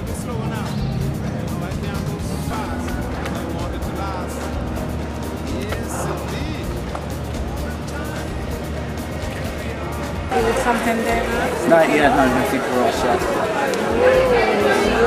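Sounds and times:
boat engine rumble: 0.0s - 15.0s
faint voices: 0.0s - 15.0s
music playing: 0.0s - 15.0s
talking in a crowded room: 0.0s - 15.0s.

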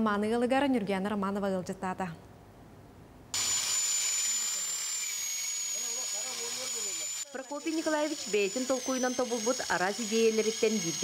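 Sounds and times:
electric lawn mower whining: 4.9s - 11.0s.

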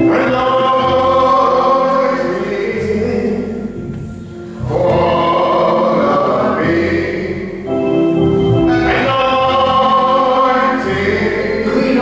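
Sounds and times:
group singing gospel song: 0.0s - 3.3s, 4.6s - 7.7s, 8.6s - 12.0s.

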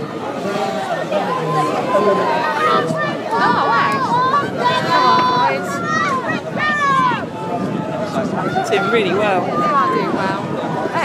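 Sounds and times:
overlapping chatter of voices: 0.0s - 11.0s.

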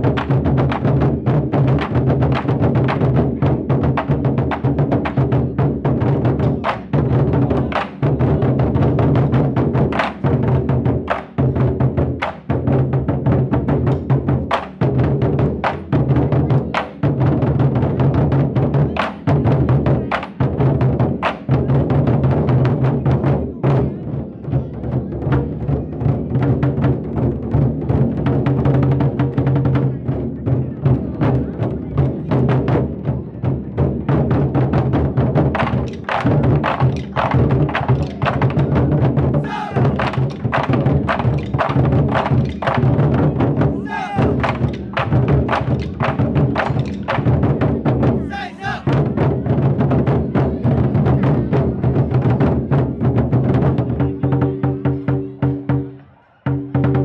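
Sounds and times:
large drums beaten fast: 0.0s - 55.9s, 56.5s - 57.0s.

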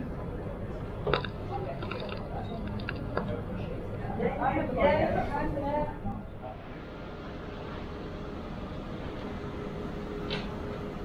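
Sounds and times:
faint steady hum: 0.0s - 11.0s
pub background noise: 0.0s - 11.0s.

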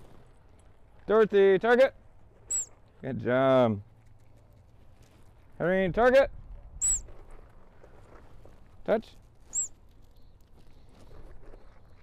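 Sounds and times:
high-pitched chirp: 2.5s - 2.7s, 6.8s - 7.0s, 9.5s - 9.7s.

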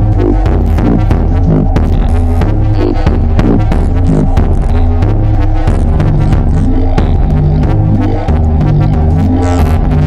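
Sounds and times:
deep throbbing bass drones: 0.0s - 10.0s
shifting synth notes: 0.0s - 10.0s.

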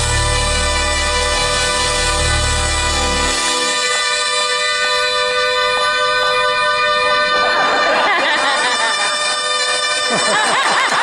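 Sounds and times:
saxophone duet sustained note: 0.0s - 10.3s
audience cheering and whooping: 10.2s - 11.0s.

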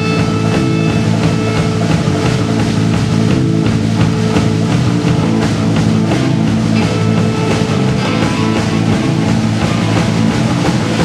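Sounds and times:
bass guitar: 0.0s - 11.0s
drum beat: 0.0s - 11.0s
electric guitars: 0.0s - 11.0s.

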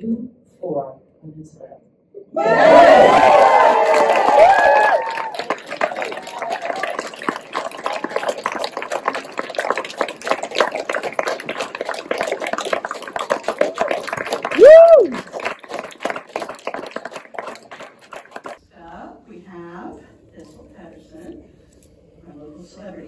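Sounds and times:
loud whoop: 2.3s - 7.0s, 14.5s - 15.3s
audience clapping: 2.5s - 18.6s.

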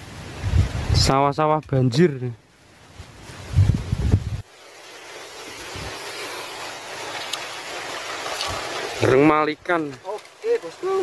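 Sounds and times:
wind hiss: 0.0s - 11.0s
wind buffeting microphone: 0.2s - 1.1s, 3.4s - 4.6s.

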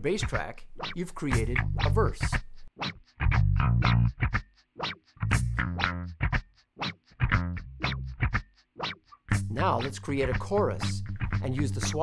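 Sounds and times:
percussive rhythm loop: 0.0s - 12.0s
bass line: 1.3s - 2.4s, 3.2s - 4.4s, 5.2s - 6.4s, 7.2s - 8.4s, 9.3s - 12.0s.

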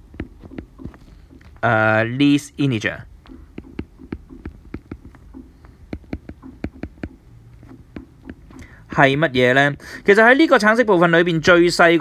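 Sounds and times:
stylus tapping on glass screen: 0.0s - 1.6s, 3.2s - 8.7s
faint low hum: 0.0s - 12.0s.

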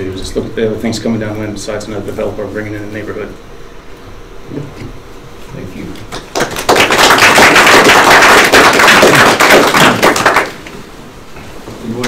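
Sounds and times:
audience clapping: 6.1s - 10.8s.

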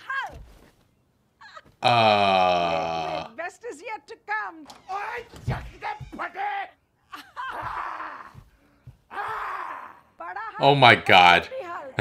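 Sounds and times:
person groaning: 1.8s - 3.4s.

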